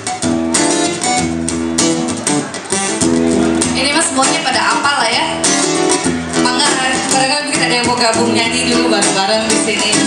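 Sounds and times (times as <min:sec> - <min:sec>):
acoustic guitars playing rhythm: 0:00.0 - 0:10.0.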